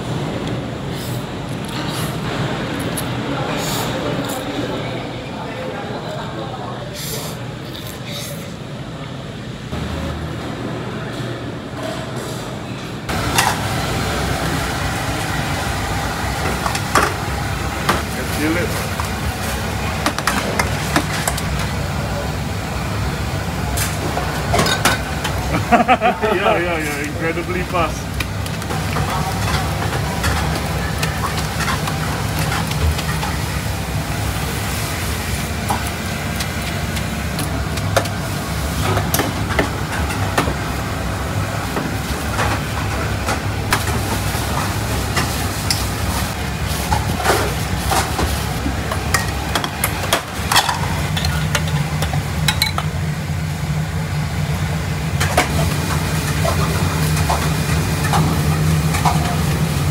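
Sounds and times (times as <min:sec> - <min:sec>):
metal utensils and bowls clinking: 0:23.8 - 0:26.0, 0:28.5 - 0:33.5, 0:49.0 - 0:52.9.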